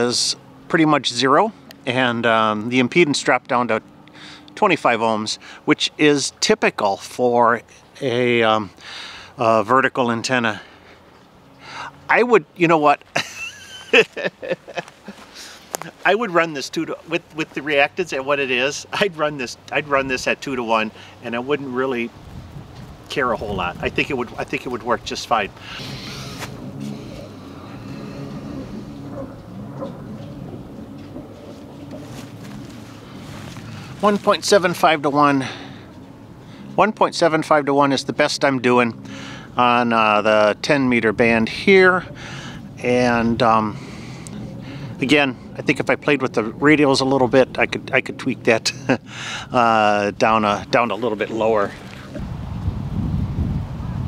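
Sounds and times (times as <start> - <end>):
wind buffeting microphone: 21.6 - 34.7, 49.9 - 54.0
engine running steadily: 23.2 - 36.8, 38.9 - 39.7, 41.2 - 52.4.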